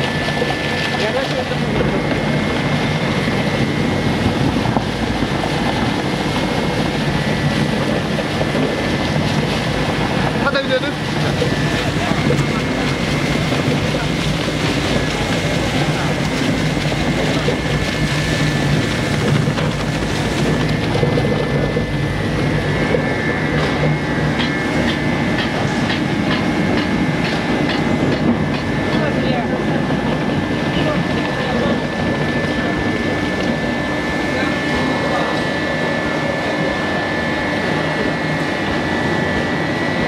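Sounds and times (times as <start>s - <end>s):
high whine: 0.0s - 40.0s
shredder running: 0.0s - 40.0s.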